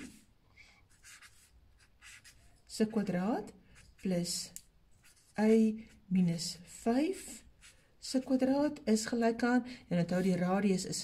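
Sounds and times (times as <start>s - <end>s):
marker scratching on paper: 0.0s - 0.2s, 0.9s - 6.0s, 6.7s - 8.5s.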